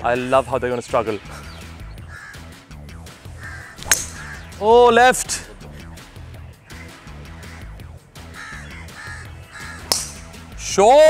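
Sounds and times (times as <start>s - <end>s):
bird calling: 1.2s - 4.8s, 5.7s - 10.3s.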